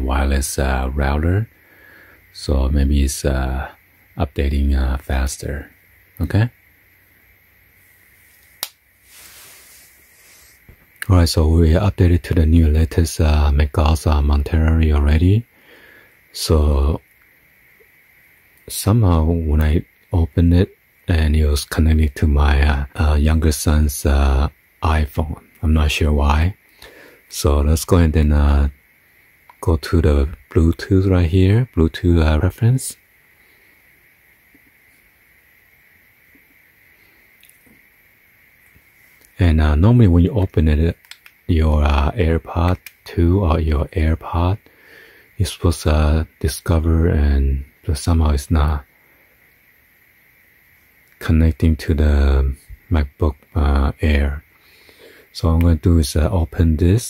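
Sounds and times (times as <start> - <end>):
faint hiss: 0.0 - 57.0
high thin whine: 0.0 - 57.0
faint soft clicks: 8.4 - 8.8, 37.4 - 37.8, 40.4 - 41.4, 42.7 - 43.0.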